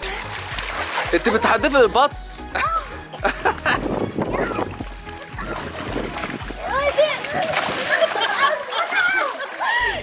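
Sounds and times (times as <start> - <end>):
water splashing: 0.0 - 10.0
children shouting: 6.6 - 10.0.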